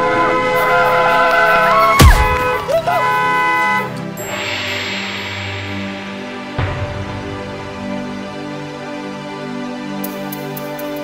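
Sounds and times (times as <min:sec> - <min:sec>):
blaring horn-like tones: 0:00.0 - 0:04.6
soft music: 0:00.0 - 0:11.0
person crying out: 0:02.6 - 0:03.2.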